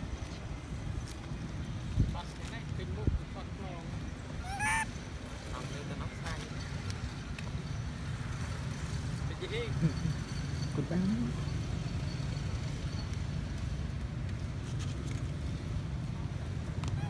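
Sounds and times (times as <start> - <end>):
macaque squealing: 4.4 - 5.0.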